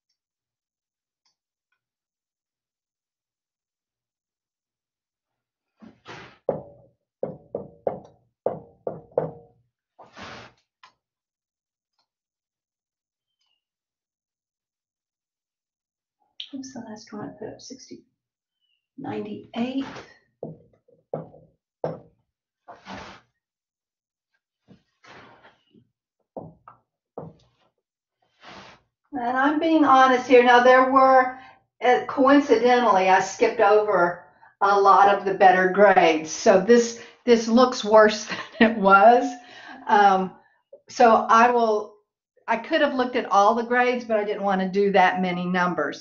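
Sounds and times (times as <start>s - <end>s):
marker tapping on whiteboard: 20.4s - 22.1s.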